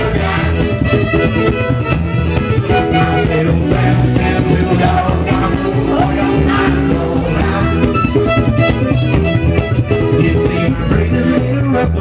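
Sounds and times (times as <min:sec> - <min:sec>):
fiddle: 0:00.0 - 0:12.0
plucked upright bass: 0:00.0 - 0:12.0
strummed ukulele: 0:00.0 - 0:12.0.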